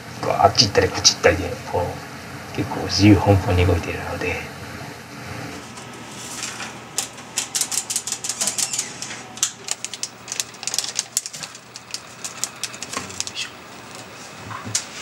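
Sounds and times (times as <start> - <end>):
plastic sachet crinkling: 6.3 - 14.2.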